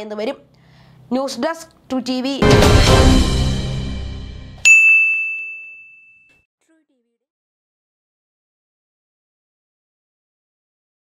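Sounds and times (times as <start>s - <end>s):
bright metallic ding: 4.6s - 6.4s.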